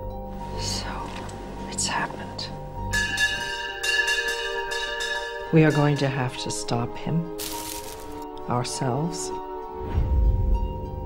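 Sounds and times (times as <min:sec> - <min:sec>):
bells ringing: 0:02.9 - 0:06.8.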